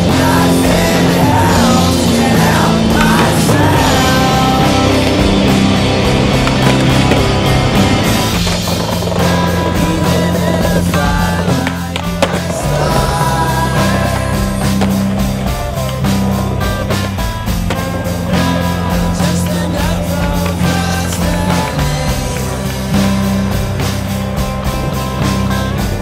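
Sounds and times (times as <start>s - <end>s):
music with steady bass: 0.0s - 26.0s
skateboard knocking and clacking: 0.0s - 26.0s
skateboard wheels rolling on concrete: 0.0s - 26.0s.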